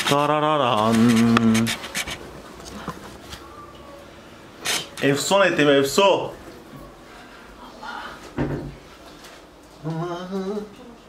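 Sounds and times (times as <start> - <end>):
man singing held note: 9.8 - 11.0.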